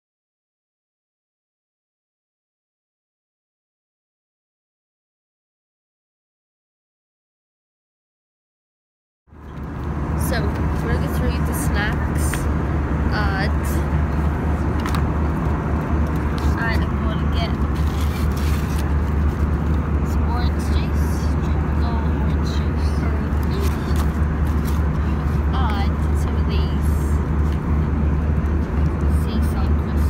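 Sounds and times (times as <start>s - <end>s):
jet cabin low drone: 9.4s - 30.0s.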